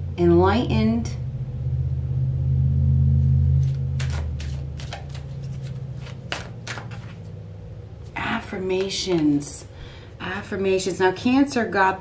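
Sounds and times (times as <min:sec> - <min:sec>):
low steady hum: 0:00.0 - 0:12.0
cards clicking and snapping: 0:03.6 - 0:07.3.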